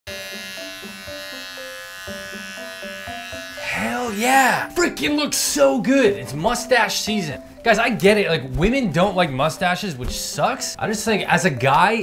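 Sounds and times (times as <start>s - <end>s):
electric shaver buzzing: 0.1s - 4.8s
background music with soft beat: 0.1s - 12.0s
man shouting: 3.7s - 4.7s.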